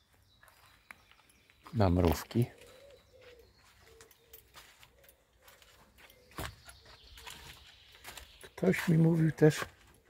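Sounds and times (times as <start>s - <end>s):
faint footsteps: 0.0s - 10.0s
bird cooing: 2.6s - 7.0s.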